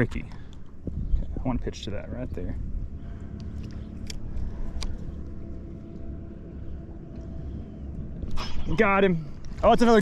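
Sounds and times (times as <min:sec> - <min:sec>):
low rumble: 0:00.0 - 0:10.0
electric trolling motor hum: 0:02.6 - 0:10.0.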